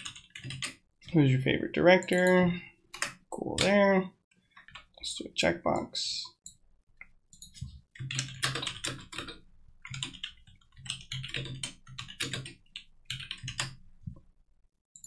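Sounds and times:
typing on computer keyboard: 0:00.0 - 0:01.2, 0:02.9 - 0:03.7, 0:07.3 - 0:13.8.

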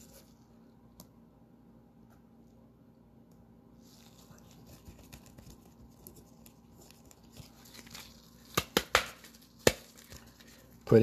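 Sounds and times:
gloved hands rustling cards: 0:00.0 - 0:00.4, 0:03.8 - 0:11.0.

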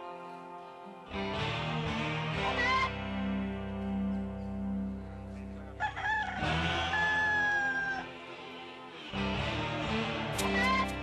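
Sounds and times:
guitar music: 0:00.0 - 0:11.0
rooster crowing: 0:05.8 - 0:08.2.

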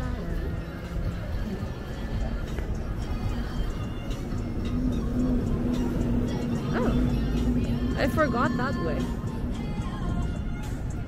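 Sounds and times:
music playing: 0:00.0 - 0:11.0
traffic rumble: 0:00.0 - 0:11.0.

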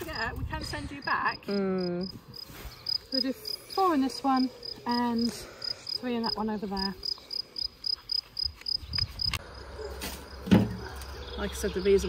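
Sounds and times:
cricket chirping: 0:00.9 - 0:12.0.

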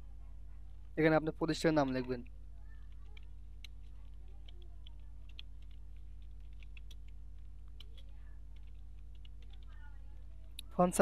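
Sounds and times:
low electrical hum: 0:00.0 - 0:11.0
keyboard key clicks: 0:02.9 - 0:09.8.

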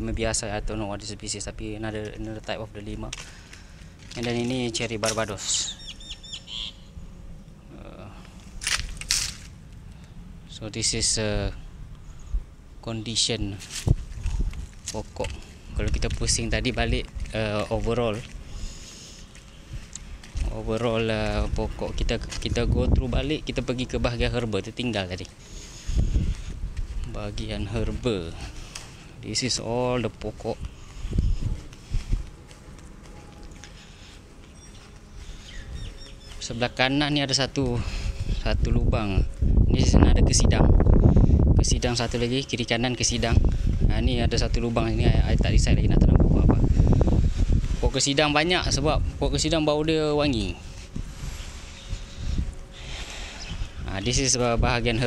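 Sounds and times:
low outdoor rumble: 0:00.0 - 0:55.0
footsteps on gravel: 0:01.9 - 0:05.6, 0:08.3 - 0:09.6, 0:13.5 - 0:23.3, 0:25.1 - 0:38.2
bird chirps: 0:05.5 - 0:07.0, 0:34.4 - 0:36.7.

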